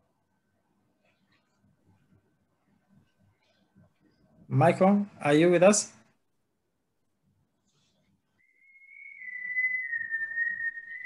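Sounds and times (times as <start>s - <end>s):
faint low noise: 0.0s - 8.6s
high-pitched whistling tone: 8.4s - 11.0s.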